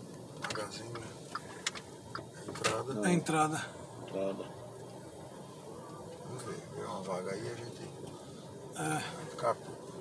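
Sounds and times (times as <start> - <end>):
car road and engine hum: 0.0 - 10.0.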